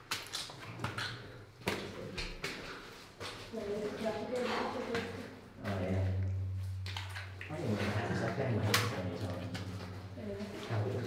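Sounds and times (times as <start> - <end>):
footsteps in wet mud: 0.0 - 5.0.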